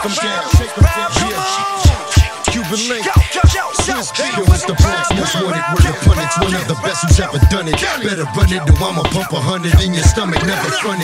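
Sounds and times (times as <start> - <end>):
hip hop beat: 0.0 - 11.0
voice over music: 0.0 - 11.0.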